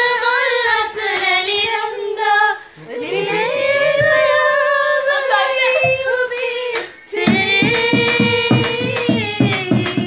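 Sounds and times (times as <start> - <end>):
people singing: 0.0 - 10.0
steady low beat: 7.2 - 10.0.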